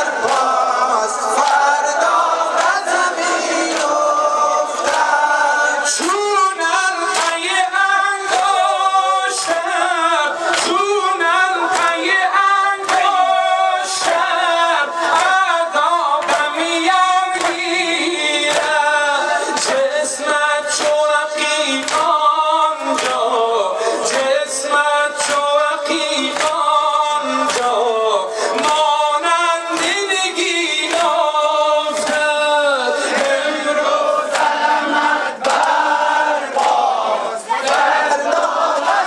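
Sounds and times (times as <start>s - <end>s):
man singing into microphone: 0.0s - 34.3s
rhythmic chest beating slaps: 0.0s - 39.0s.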